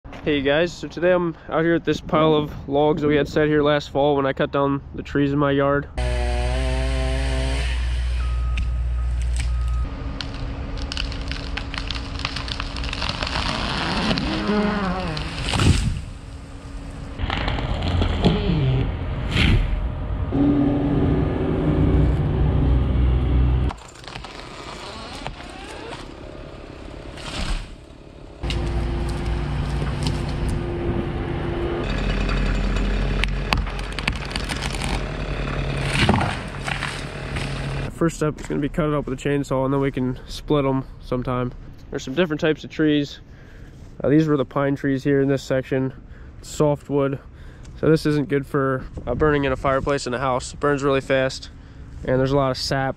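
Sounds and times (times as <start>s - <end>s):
chainsaw cutting tree limbs: 6.0s - 9.6s, 10.2s - 16.3s, 23.6s - 30.7s, 31.9s - 37.9s
loader engine running: 6.0s - 39.2s
wood cracking: 9.1s - 16.2s, 17.2s - 18.4s, 23.6s - 30.6s, 31.8s - 38.6s.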